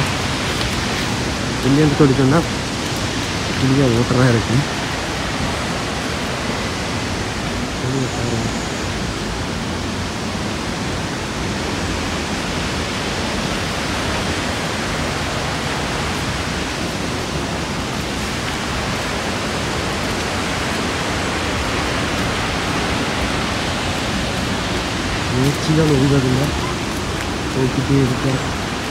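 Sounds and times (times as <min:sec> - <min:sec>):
waterfall rushing: 0:00.0 - 0:28.9.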